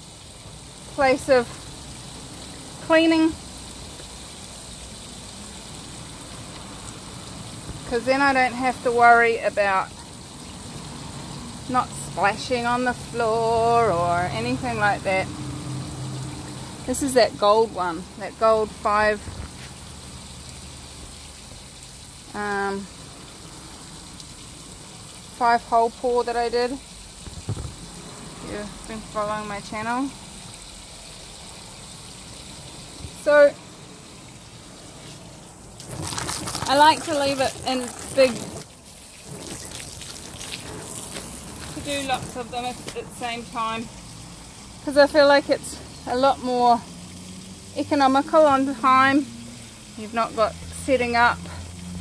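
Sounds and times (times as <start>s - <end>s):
sponge scrubbing canvas: 35.0s - 43.5s.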